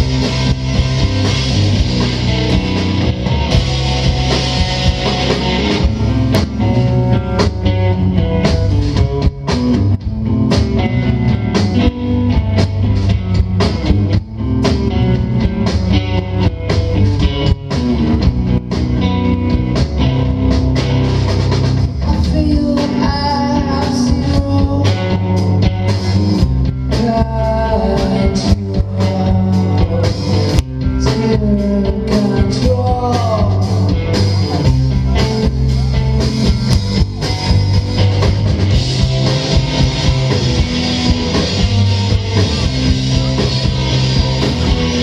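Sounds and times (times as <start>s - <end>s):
live rock band playing: 0.0s - 45.0s.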